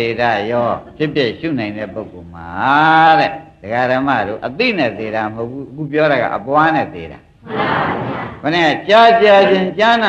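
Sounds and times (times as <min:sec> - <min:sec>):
man speaking: 0:00.0 - 0:07.2, 0:08.4 - 0:10.0.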